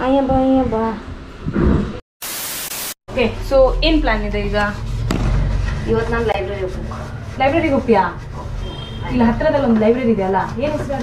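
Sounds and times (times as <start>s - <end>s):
white noise static hiss: 2.2s - 3.0s.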